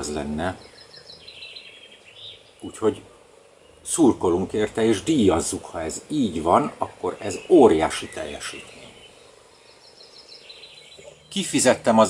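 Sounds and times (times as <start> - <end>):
faint bird chirping: 0.0 - 12.0
low background noise: 0.0 - 12.0.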